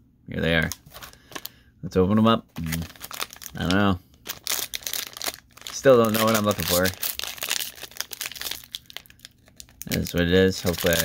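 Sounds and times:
foil wrapper crinkling and tearing: 0:00.6 - 0:01.5, 0:02.6 - 0:11.0.

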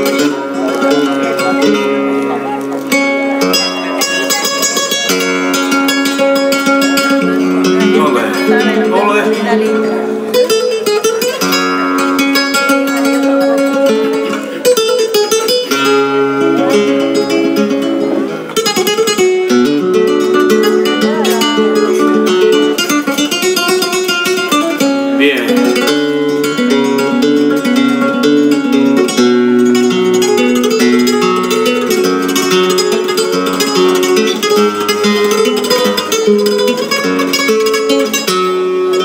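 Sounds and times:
flamenco guitar: 0:00.0 - 0:39.0.

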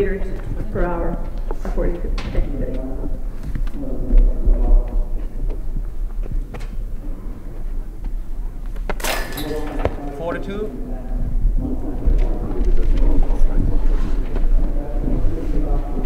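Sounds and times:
voices talking indoors: 0:00.0 - 0:16.0.

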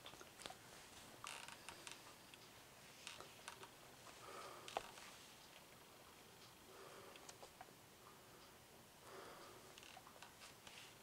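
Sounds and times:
floor creaks: 0:01.2 - 0:02.1, 0:02.9 - 0:03.7, 0:04.7 - 0:05.1, 0:09.8 - 0:10.8.

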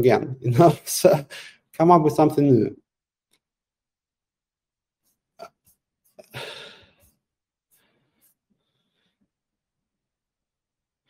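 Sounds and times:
faint breathing: 0:01.3 - 0:01.7, 0:06.2 - 0:09.3
man sighing: 0:06.2 - 0:07.0.

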